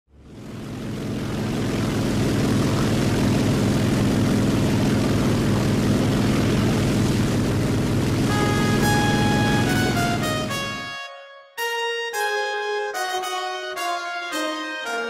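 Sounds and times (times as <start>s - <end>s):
propeller plane engine droning: 0.1s - 11.0s.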